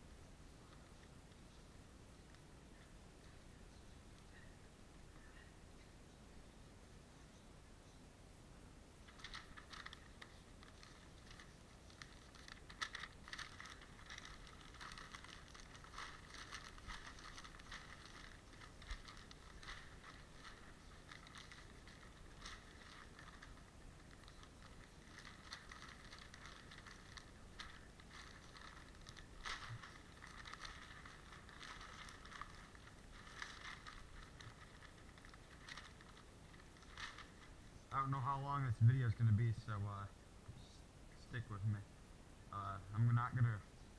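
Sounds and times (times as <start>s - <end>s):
newspaper rustling and crinkling: 9.0s - 38.6s.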